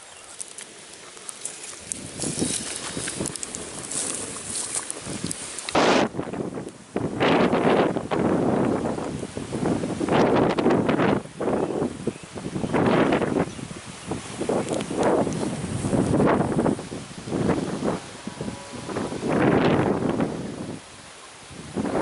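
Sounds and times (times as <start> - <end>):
leaves rustling: 0.0 - 22.0
wind buffeting microphone: 0.8 - 22.0.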